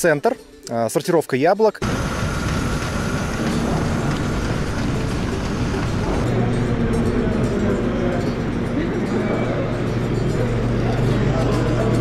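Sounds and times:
conveyor clatter and rumble: 1.8 - 12.0.

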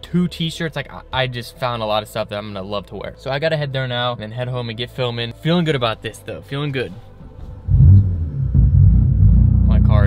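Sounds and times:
car engine starting and idling: 7.6 - 10.0.

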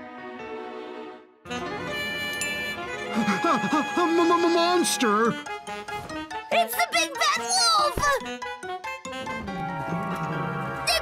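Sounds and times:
children's cartoon music: 0.1 - 11.0.

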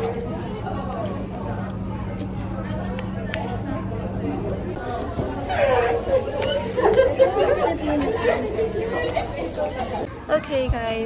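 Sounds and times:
low hum: 0.0 - 10.2
indistinct voices chattering: 0.0 - 11.0.

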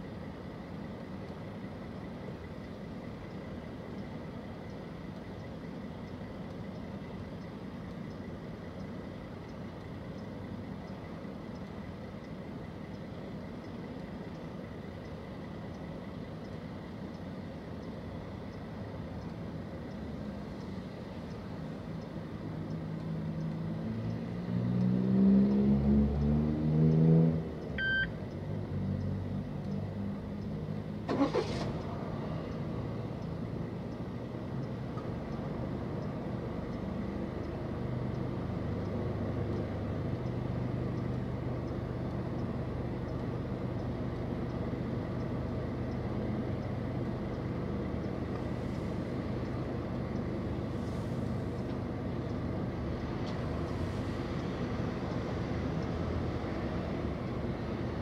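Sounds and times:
low engine idle hum: 0.0 - 24.4, 27.4 - 58.0
vehicle accelerating: 22.8 - 33.7
short electronic beep: 27.8 - 28.2.

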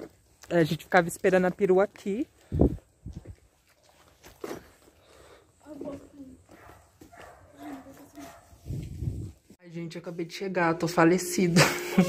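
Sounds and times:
dog barking: 6.5 - 8.6
microphone handling noise: 8.6 - 9.5.

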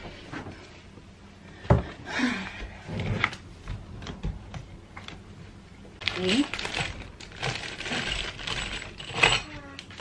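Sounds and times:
plastic bag crinkling: 6.0 - 9.2
metal screws clinking: 6.7 - 9.6.

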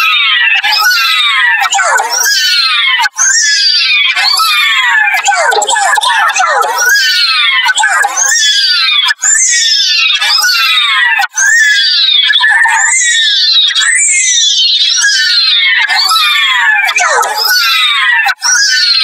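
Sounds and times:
distorted high-pitched cartoon voice: 0.0 - 14.2, 14.8 - 19.0.

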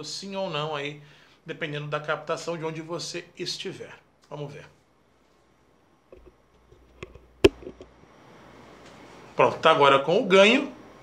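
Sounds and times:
microphone handling rubbing: 6.1 - 7.9.

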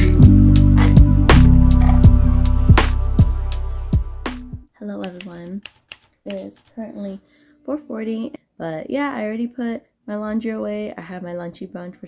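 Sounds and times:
woman speaking: 1.8 - 2.2, 4.8 - 5.7, 6.3 - 12.0.

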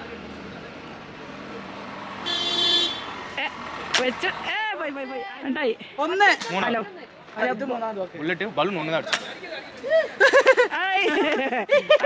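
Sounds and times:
outdoor background noise: 0.0 - 12.0
vehicle horn toot: 2.2 - 3.1
sharp crack: 3.8 - 4.2, 9.1 - 9.4.

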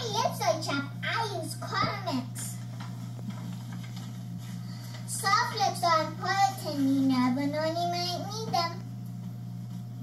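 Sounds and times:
girl singing: 5.1 - 8.8.

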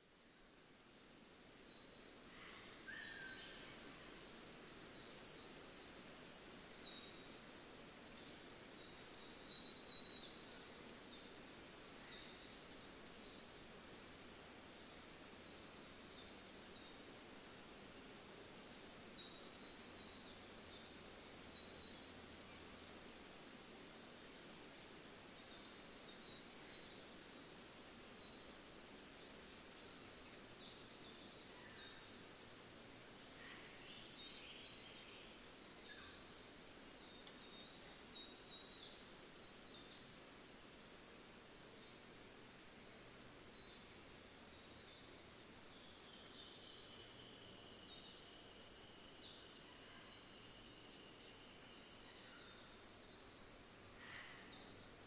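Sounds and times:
faint birds chirping: 0.0 - 55.0
low steady hiss: 0.0 - 55.0.

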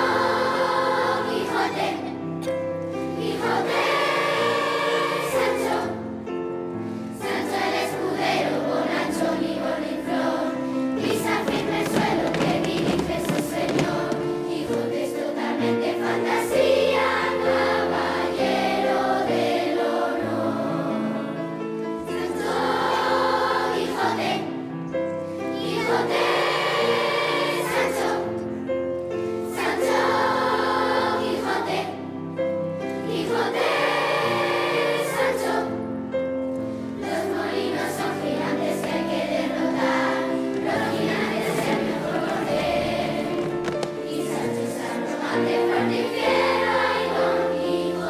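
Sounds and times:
children's choir singing: 0.0 - 48.0
low instrumental accompaniment: 0.0 - 48.0.

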